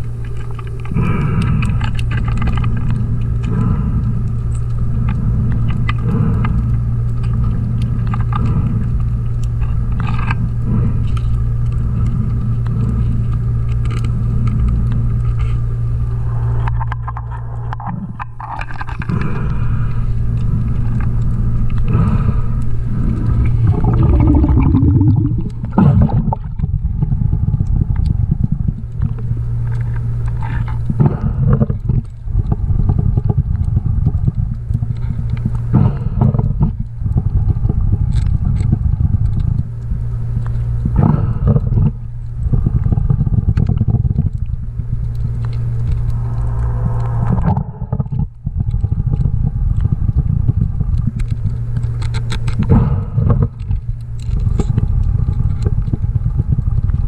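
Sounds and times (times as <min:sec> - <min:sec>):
exhaled bubbles surging: 0:00.0 - 0:57.0
steady low hum: 0:00.0 - 0:57.0
diver breathing through regulator: 0:00.7 - 0:44.3, 0:45.2 - 0:50.9, 0:52.5 - 0:53.9.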